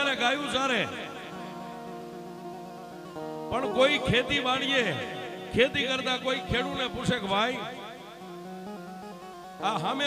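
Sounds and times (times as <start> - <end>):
man narrating: 0.0 - 1.4, 3.5 - 7.9, 9.6 - 10.0
harmonium holding a chord: 0.0 - 10.0.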